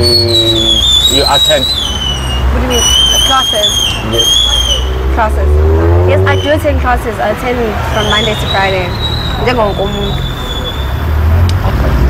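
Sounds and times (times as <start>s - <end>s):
vehicle passing rumble: 0.0s - 12.0s.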